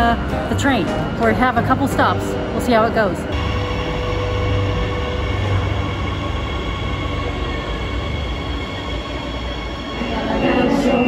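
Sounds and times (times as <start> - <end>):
faint train whine: 0.0 - 11.0
train rumbling: 0.0 - 11.0.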